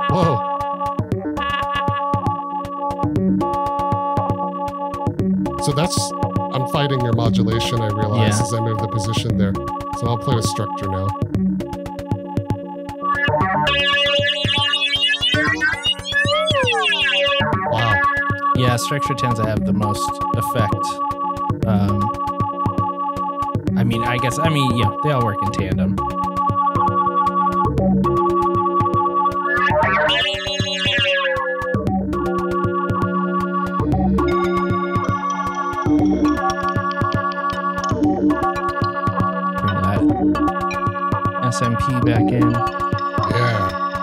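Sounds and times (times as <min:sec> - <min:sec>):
ringing synthesizer tones: 0:07.6 - 0:08.8, 0:13.0 - 0:19.5, 0:28.4 - 0:33.2.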